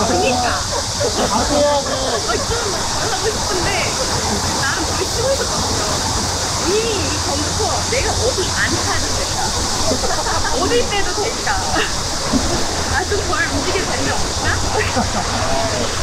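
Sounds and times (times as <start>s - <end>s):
steady high hiss: 0.0s - 16.0s
voices talking: 0.0s - 16.0s.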